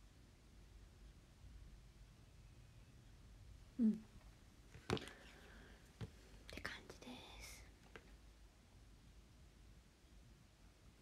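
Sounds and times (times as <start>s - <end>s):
woman whispering: 3.8s - 4.0s, 6.5s - 7.7s.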